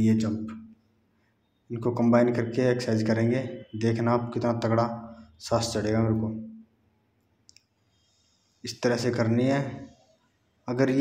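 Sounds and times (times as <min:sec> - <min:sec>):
man speaking: 0:00.0 - 0:00.7, 0:01.7 - 0:06.6, 0:08.6 - 0:10.0, 0:10.7 - 0:11.0.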